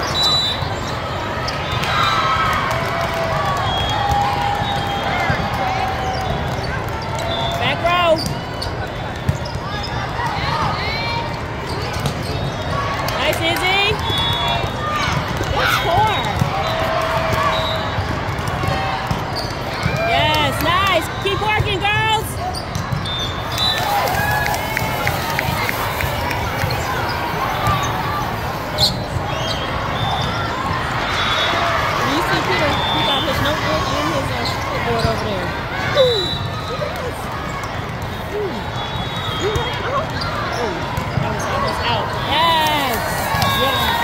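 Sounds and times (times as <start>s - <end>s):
chatter of players and spectators: 0.0s - 44.0s
shoes squeaking on court: 8.1s - 10.1s, 19.1s - 19.9s, 21.7s - 30.5s, 31.3s - 38.6s, 39.2s - 44.0s
volleyball hits: 21.5s - 29.4s.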